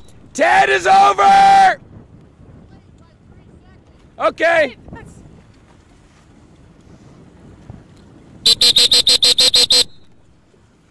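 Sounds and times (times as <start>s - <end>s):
short pitched beeps: 8.5s - 10.2s.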